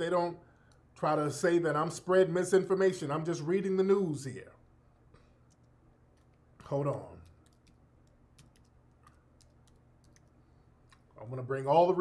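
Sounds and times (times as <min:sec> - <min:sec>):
computer keyboard typing: 0:06.9 - 0:11.0.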